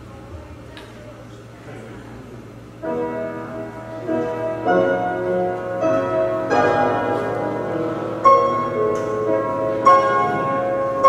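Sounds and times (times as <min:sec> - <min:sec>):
grand piano playing slowly: 0:02.7 - 0:11.0.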